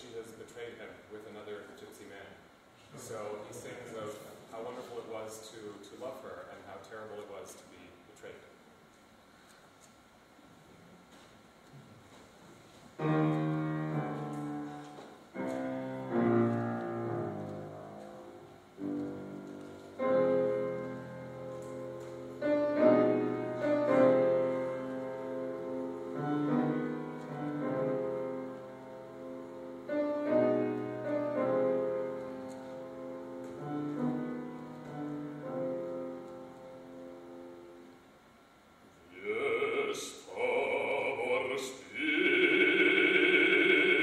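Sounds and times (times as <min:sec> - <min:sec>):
slow piano chords: 0:12.9 - 0:38.5, 0:39.2 - 0:44.0
operatic singing: 0:39.1 - 0:44.0.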